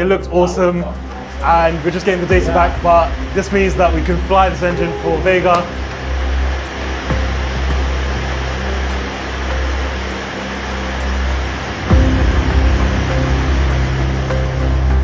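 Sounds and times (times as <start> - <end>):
background music with ticking beat: 0.0 - 15.0
heavy bass swell: 0.0 - 15.0
rocket engine roaring: 0.0 - 15.0.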